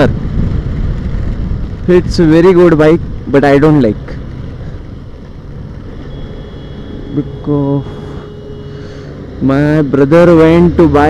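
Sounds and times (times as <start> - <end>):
wind rushing: 0.0 - 7.1
motorcycle engine cruising: 0.0 - 11.0.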